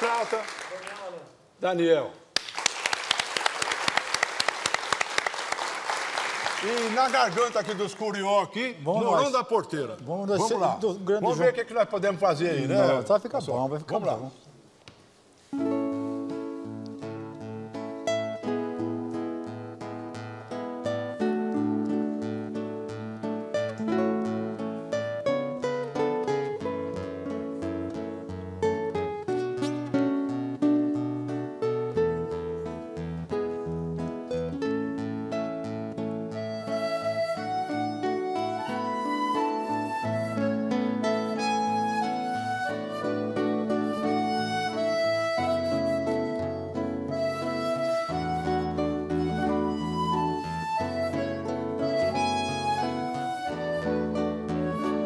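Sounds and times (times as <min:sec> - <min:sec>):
flute melody: 0:15.5 - 0:55.0
plucked guitar notes: 0:15.5 - 0:55.0
accordion: 0:36.3 - 0:55.0.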